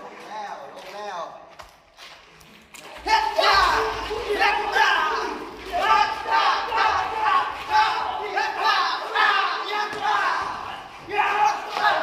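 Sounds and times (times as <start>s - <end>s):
men shouting fight yells: 3.0s - 12.0s.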